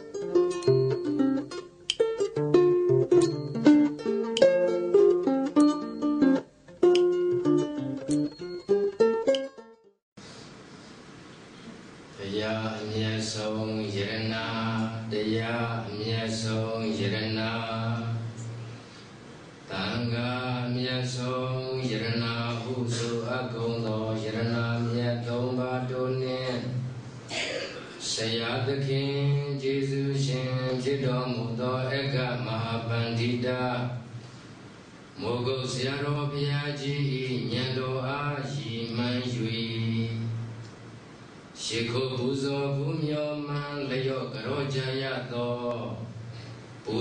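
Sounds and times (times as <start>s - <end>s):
monk chanting: 12.2s - 18.5s, 19.7s - 27.0s, 28.0s - 34.1s, 35.2s - 40.5s, 41.6s - 46.2s.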